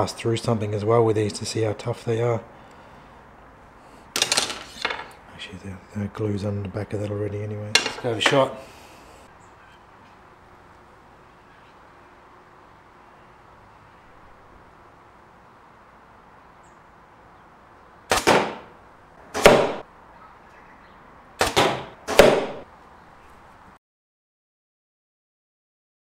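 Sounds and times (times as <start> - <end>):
arrow thudding into target: 18.1 - 18.7, 19.4 - 19.8, 21.4 - 22.6.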